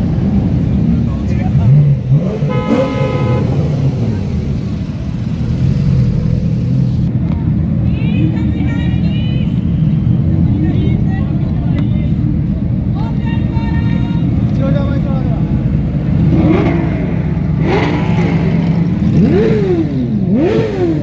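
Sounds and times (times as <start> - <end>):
car engine rumbling and revving: 0.0 - 8.5, 14.3 - 21.0.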